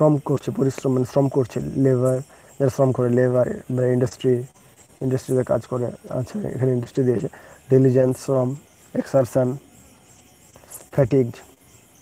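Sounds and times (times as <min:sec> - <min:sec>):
man speaking: 0:00.0 - 0:09.6, 0:10.9 - 0:11.5.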